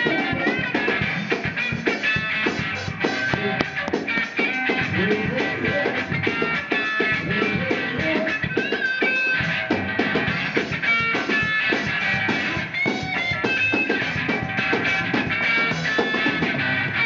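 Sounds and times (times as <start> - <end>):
electric lead guitar: 0.0 - 17.0
gospel band music: 0.0 - 17.0.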